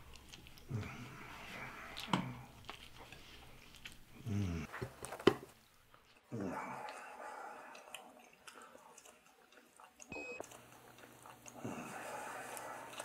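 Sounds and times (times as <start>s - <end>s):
wet chewing and biting: 0.0s - 5.3s, 5.9s - 13.0s.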